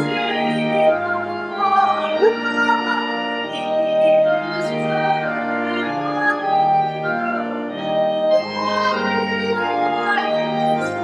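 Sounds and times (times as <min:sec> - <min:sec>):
church organ playing hymn: 0:00.0 - 0:11.0.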